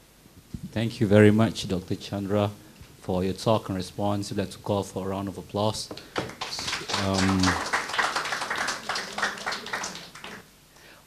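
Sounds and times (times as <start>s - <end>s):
audience applause: 6.0s - 10.5s.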